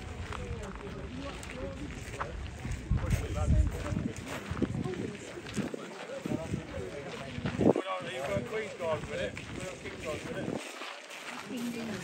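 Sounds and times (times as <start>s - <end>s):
people talking and laughing: 0.0s - 12.0s
wind rumbling on microphone: 0.0s - 12.0s.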